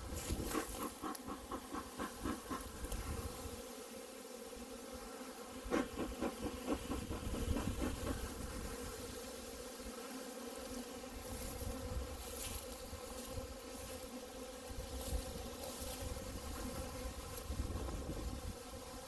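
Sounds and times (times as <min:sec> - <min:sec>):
footsteps rustling through grass: 0:00.0 - 0:03.2, 0:11.1 - 0:17.7
bee swarm buzzing: 0:00.0 - 0:19.0.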